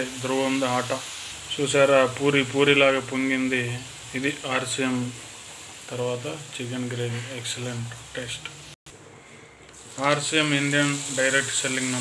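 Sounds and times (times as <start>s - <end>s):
man talking: 0.0s - 5.2s, 5.9s - 8.6s, 10.0s - 12.0s
oil sizzling while deep-frying: 0.0s - 8.8s, 9.7s - 12.0s.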